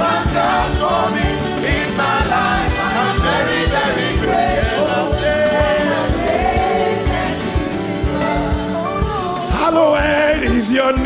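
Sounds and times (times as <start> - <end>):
choir and congregation singing: 0.0 - 10.7
band playing: 0.0 - 11.0
steady drum beat: 0.0 - 11.0.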